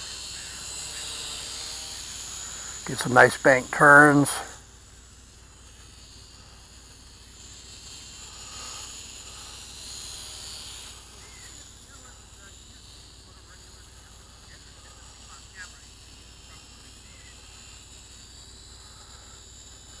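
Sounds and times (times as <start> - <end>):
toy drone propellers buzzing: 0.0 - 20.0.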